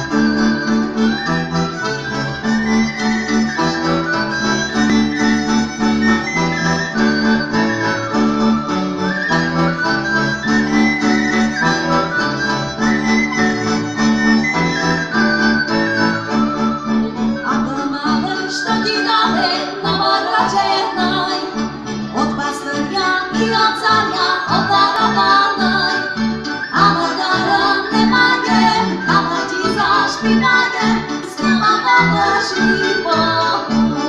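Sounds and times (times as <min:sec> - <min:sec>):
accordion: 0:00.0 - 0:34.0
double bass: 0:00.0 - 0:34.0
violin: 0:00.0 - 0:34.0.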